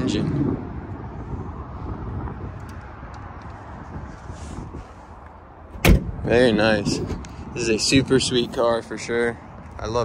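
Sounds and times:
steady low rumble: 0:00.0 - 0:08.9
car hood slamming shut: 0:05.7 - 0:06.3.

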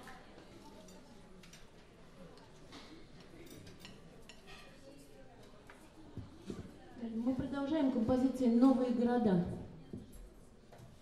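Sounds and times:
cutlery and glasses clinking: 0:03.2 - 0:04.8.

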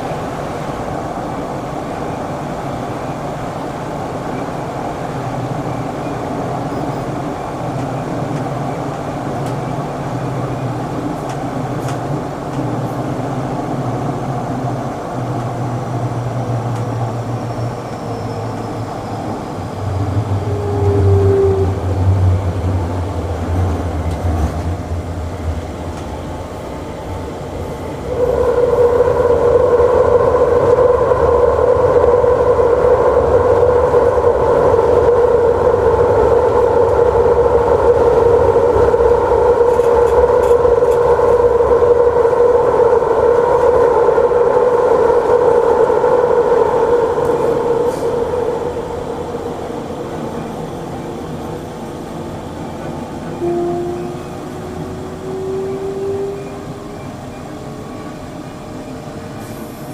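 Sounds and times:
train rumbling through tunnel: 0:00.0 - 0:59.9
steady whine: 0:19.2 - 0:53.5.

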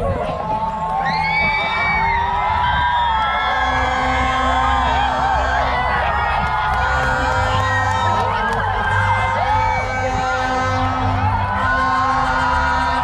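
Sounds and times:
background music: 0:00.0 - 0:13.0
crowd cheering and whooping: 0:00.0 - 0:13.0.

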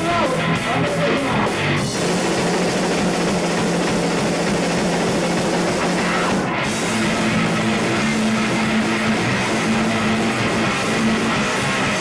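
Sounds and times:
heavy metal band with distorted guitars: 0:00.0 - 0:12.0.

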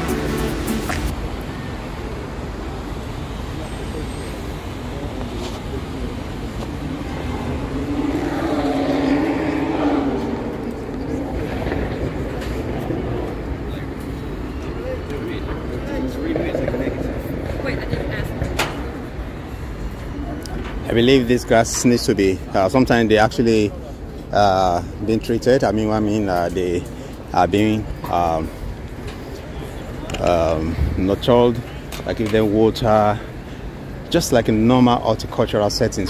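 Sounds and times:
traffic rumble: 0:00.0 - 0:36.0.

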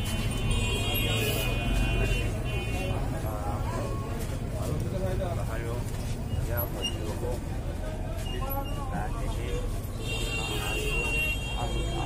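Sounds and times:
vehicle engine rumble: 0:00.0 - 0:10.0
faint voices: 0:00.0 - 0:12.0.

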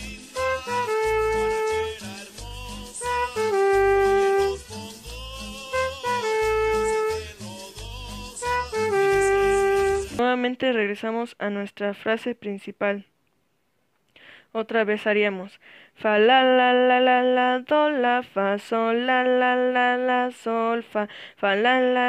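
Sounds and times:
trumpet playing: 0:00.0 - 0:07.5, 0:08.2 - 0:10.2
salsa backing track: 0:00.0 - 0:10.2.

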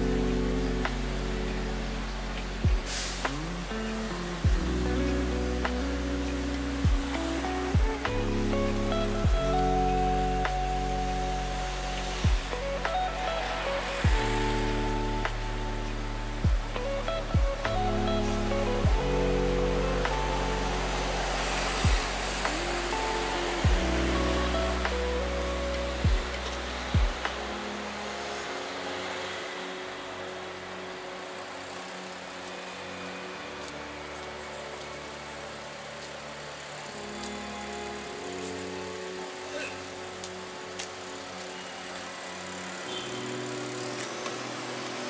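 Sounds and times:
deep bass: 0:00.0 - 0:28.0
synth chords: 0:00.0 - 0:45.0
heavy low drum hits: 0:12.2 - 0:12.5, 0:14.1 - 0:14.3, 0:16.4 - 0:16.7, 0:21.8 - 0:22.6, 0:23.6 - 0:23.9, 0:26.0 - 0:26.3.

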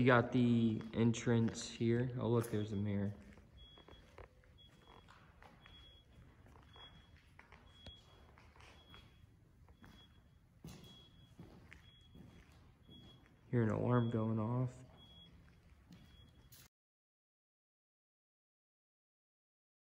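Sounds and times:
electronic alarm beeping: 0:00.0 - 0:16.7.

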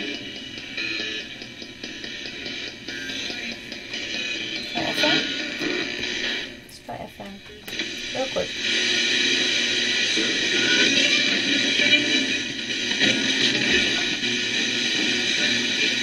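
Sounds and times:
fragments of broadcast voices: 0:00.0 - 0:16.0
radio static hiss: 0:00.0 - 0:16.0.

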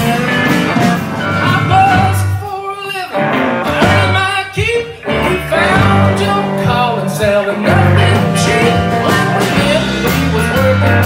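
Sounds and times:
live band playing country-rock: 0:00.0 - 0:11.0.

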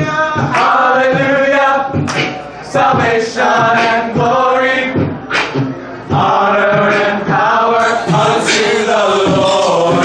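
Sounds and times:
beatboxed beat: 0:00.0 - 0:10.0
vocal group singing in harmony: 0:00.0 - 0:10.0.

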